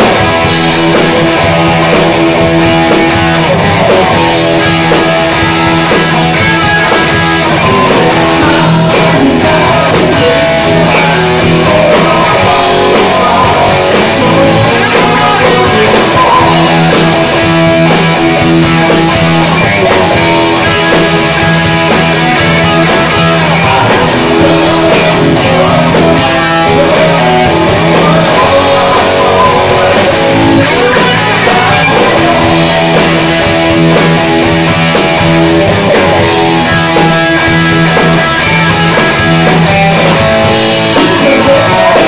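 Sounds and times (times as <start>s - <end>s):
loud rock band with electric guitars: 0.0s - 42.0s.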